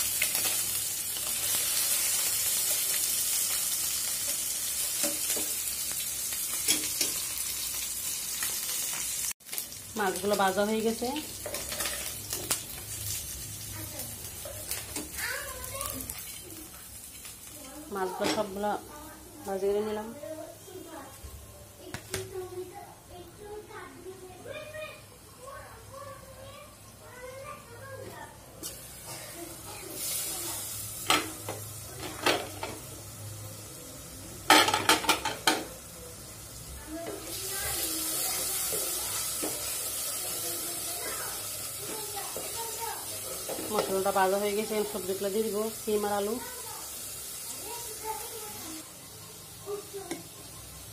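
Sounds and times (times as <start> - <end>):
fish sizzling in hot oil: 0.0 - 21.2, 24.5 - 50.9
steel cookware clanking: 6.5 - 7.4, 11.3 - 12.8, 31.0 - 32.9, 34.5 - 35.8
metal spatula clicking and scraping: 11.4 - 12.6.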